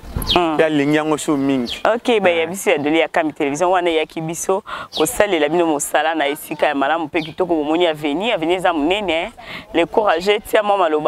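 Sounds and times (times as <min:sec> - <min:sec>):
person talking: 0:00.2 - 0:11.0.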